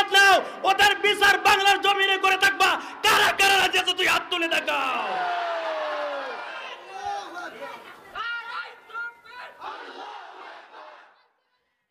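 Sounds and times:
crowd of men shouting: 4.7s - 11.3s.

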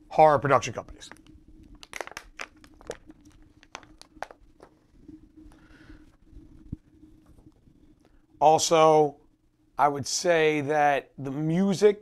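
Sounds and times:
plastic water bottle crinkling: 1.0s - 5.2s.

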